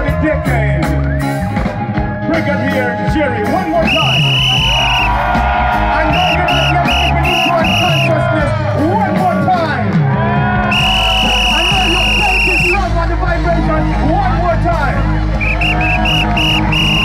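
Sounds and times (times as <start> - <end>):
live reggae music: 0.0 - 17.0
heavy bass line: 3.1 - 9.5, 10.7 - 17.0
high shrill horn toots: 10.7 - 12.8, 15.4 - 17.0.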